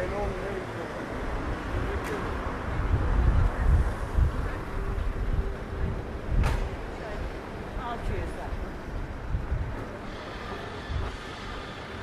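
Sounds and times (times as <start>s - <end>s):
traffic rumble: 0.0s - 12.0s
wind buffeting microphone: 1.2s - 11.6s.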